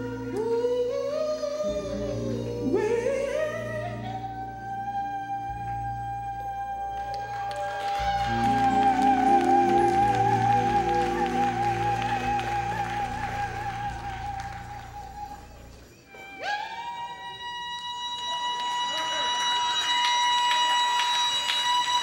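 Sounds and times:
church band music: 0.0 - 22.0.

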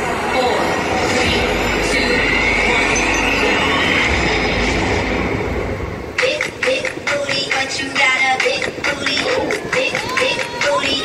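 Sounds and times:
train-like rushing noise: 0.0 - 9.6
rising squeal: 0.3 - 6.1.

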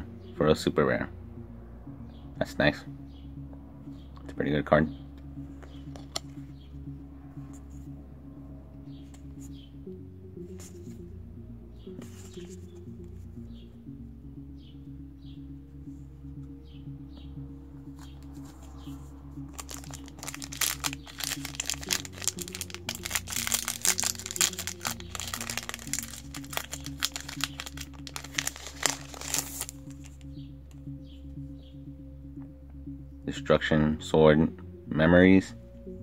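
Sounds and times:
background music: 0.0 - 36.0
foil wrapper crinkling and tearing: 19.5 - 30.1.

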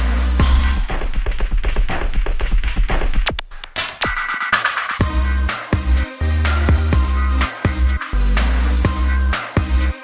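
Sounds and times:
deep bass: 0.0 - 3.4, 5.0 - 10.0
muffled electronic dance-pop music: 0.0 - 10.0
fast percussive hits: 0.4 - 10.0.

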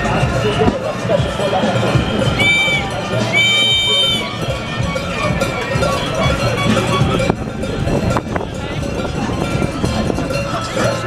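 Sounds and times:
crowd voices and hubbub: 0.0 - 11.0.

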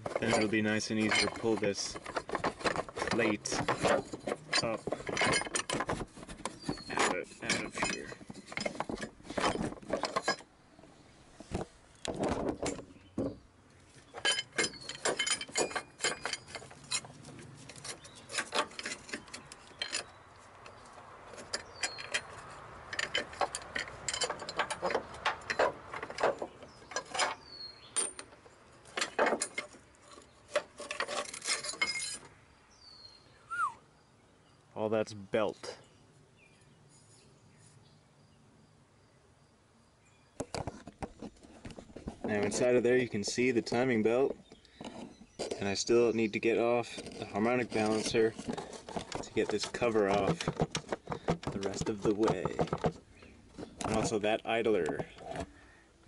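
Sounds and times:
metal bracket clinking and knocking: 0.0 - 10.5, 14.1 - 20.2, 21.3 - 32.3, 40.4 - 55.5.

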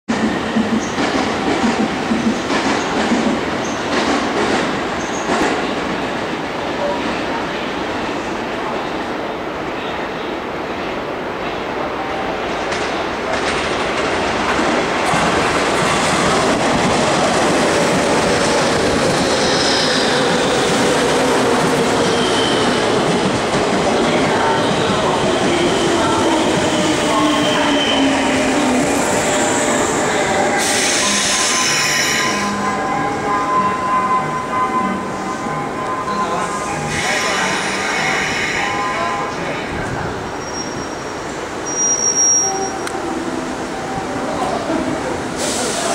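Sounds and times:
train wheels rumbling and clattering: 0.1 - 7.2, 12.5 - 32.0.

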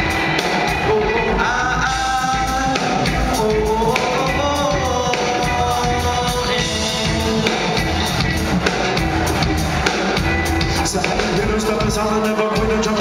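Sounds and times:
drum kit beat: 0.0 - 13.0
live band music: 0.0 - 13.0.

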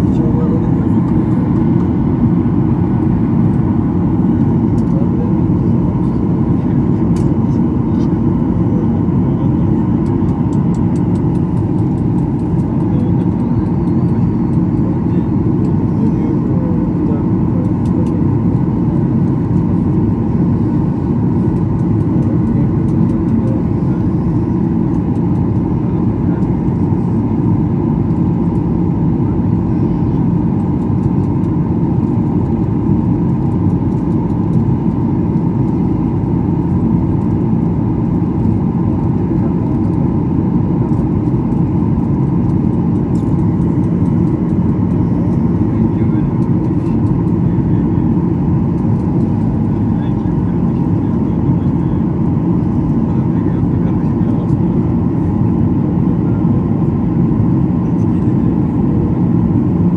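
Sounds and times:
jet engine and airflow drone: 0.0 - 59.9.

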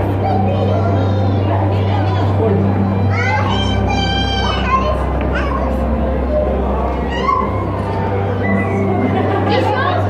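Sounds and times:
crowd murmur: 0.0 - 10.0
high-pitched wordless cry: 6.4 - 7.7.

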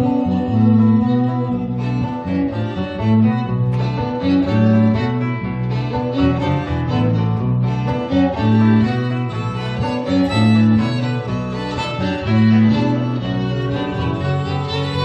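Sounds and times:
guitar: 0.0 - 15.0
violins bowing melody: 0.0 - 15.0
walking bass line: 0.0 - 15.0.

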